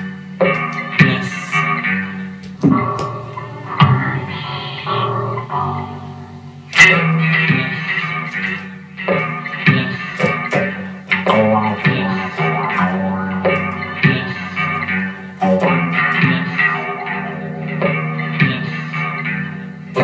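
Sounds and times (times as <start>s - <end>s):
electric guitar chords ringing: 0.0s - 20.0s.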